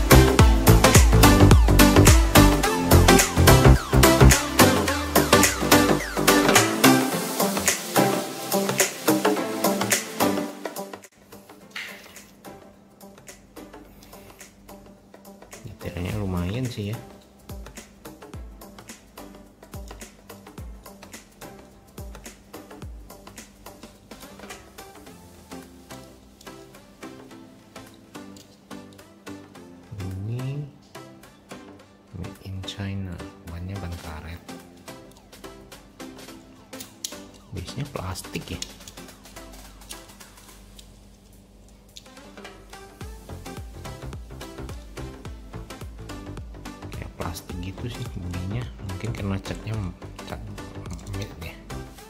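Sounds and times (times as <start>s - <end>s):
electronic dance music: 0.0s - 11.0s, 42.4s - 52.0s.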